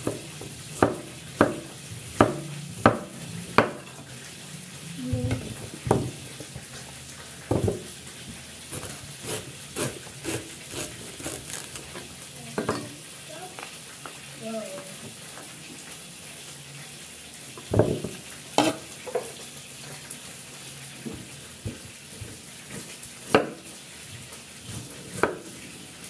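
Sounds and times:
cleaver chopping on wooden board: 0.8 - 3.8, 23.3 - 23.6
husk rustling while peeled: 10.3 - 11.9.

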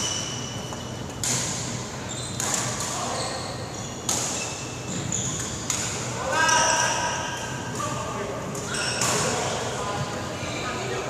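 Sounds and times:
racket hitting shuttlecock: 0.0 - 3.1, 4.1 - 4.4, 5.4 - 6.1.

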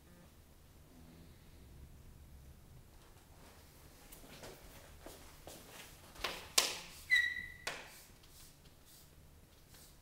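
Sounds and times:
chalk scratching on blackboard: 6.8 - 9.1
chalk squeak: 6.9 - 8.1.

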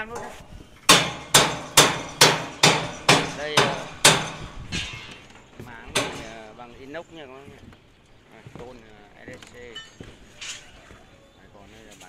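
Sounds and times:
hammer blows ringing: 0.9 - 5.2, 5.8 - 6.6.

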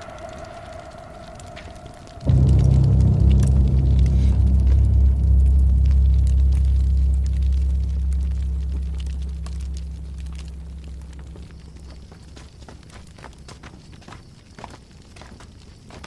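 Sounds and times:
deep low bass drone: 0.0 - 12.6.

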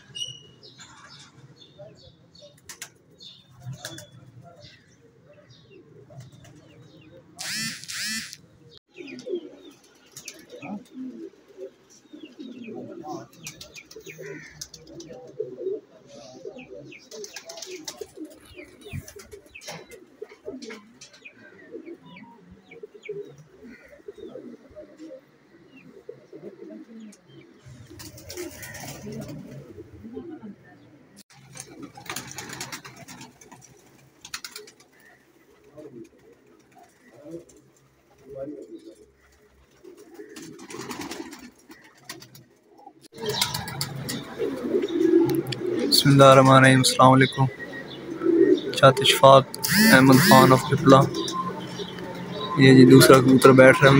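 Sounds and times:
pigeons cooing: 0.0 - 53.9.

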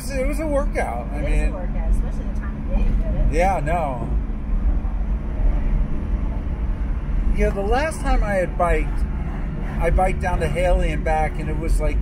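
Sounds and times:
car engine and road noise: 0.0 - 12.0.

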